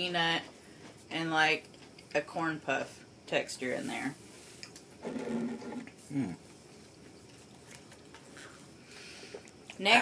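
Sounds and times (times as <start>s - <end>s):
closed-mouth hum: 4.6s - 9.8s.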